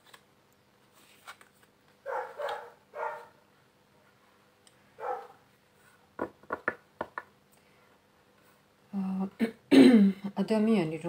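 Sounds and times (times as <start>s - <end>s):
dog barking: 2.0s - 3.4s, 5.0s - 5.4s.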